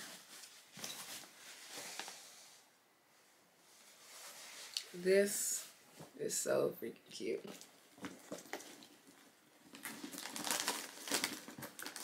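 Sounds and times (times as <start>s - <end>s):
handbag rustling and crinkling: 8.0s - 12.0s.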